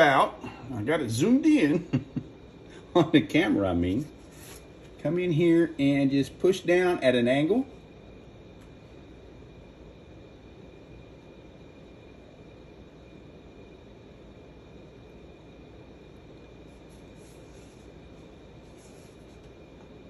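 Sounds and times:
background hum and hiss: 0:00.0 - 0:20.0.

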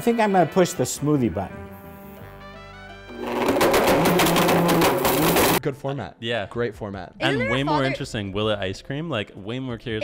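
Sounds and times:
blender grinding: 0:03.0 - 0:05.6.

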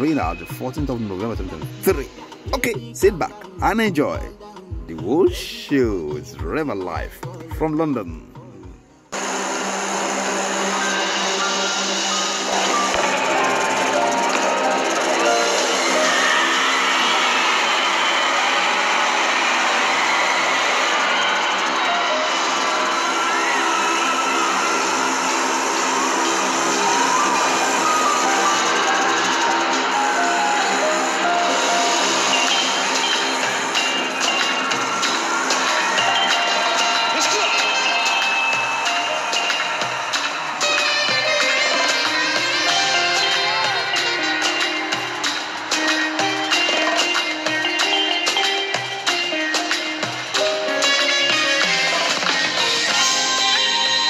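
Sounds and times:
music with long held notes: 0:00.0 - 0:54.0
crowd screaming and cheering: 0:09.1 - 0:54.0.

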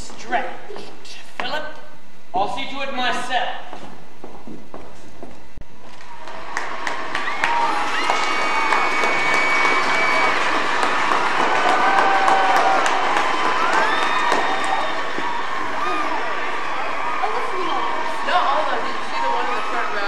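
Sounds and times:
audience applauding: 0:05.8 - 0:20.0
audience cheering and whooping: 0:05.8 - 0:20.0.

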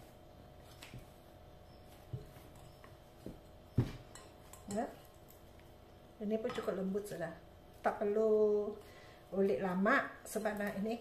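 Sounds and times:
dough being kneaded by hand: 0:00.0 - 0:05.8.

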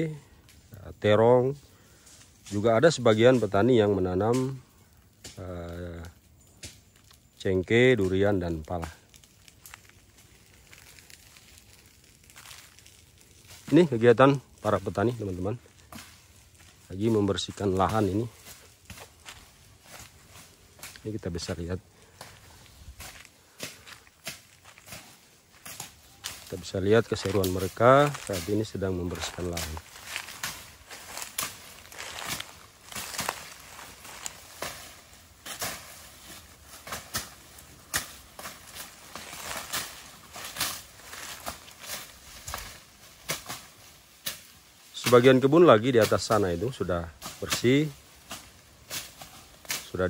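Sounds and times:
footsteps on dry leaves: 0:00.0 - 0:50.0.

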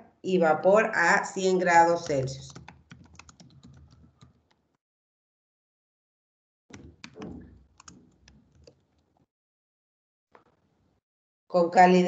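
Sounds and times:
computer keyboard key clicks: 0:02.0 - 0:04.6, 0:06.7 - 0:08.8.

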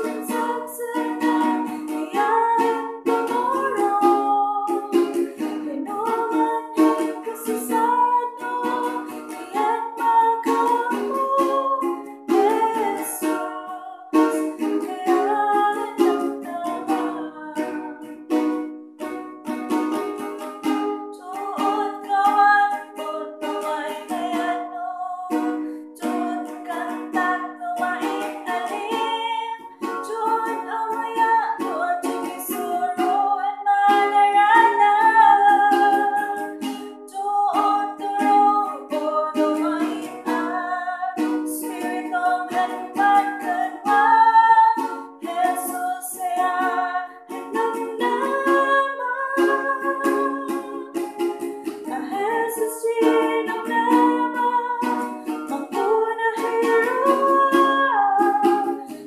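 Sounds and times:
woman singing gospel song: 0:00.0 - 0:04.7, 0:37.1 - 0:50.8, 0:51.9 - 0:54.9, 0:55.6 - 0:58.7
ukulele strummed chords: 0:00.0 - 0:59.0.

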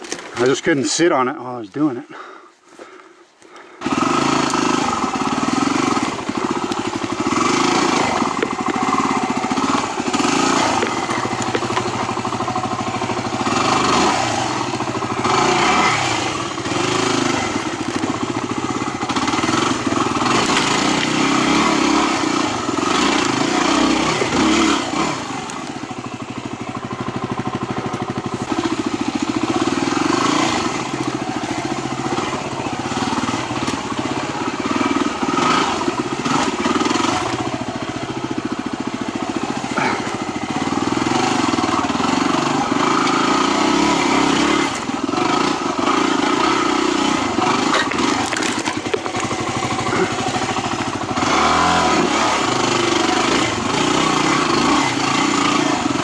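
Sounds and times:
motorcycle engine revving: 0:03.6 - 0:56.0.

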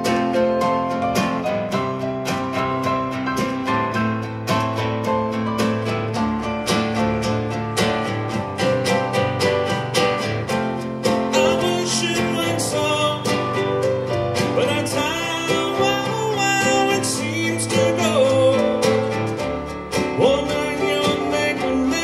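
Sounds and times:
strummed acoustic guitar: 0:00.0 - 0:22.0
man singing: 0:11.2 - 0:19.4, 0:20.0 - 0:22.0.

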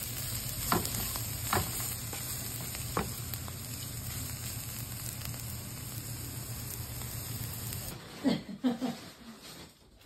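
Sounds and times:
vegetables sizzling in oil: 0:00.0 - 0:08.0.

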